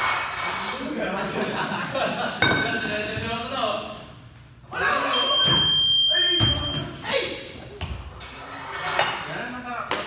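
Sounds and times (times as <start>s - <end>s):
high-pitched beep: 5.1s - 6.8s.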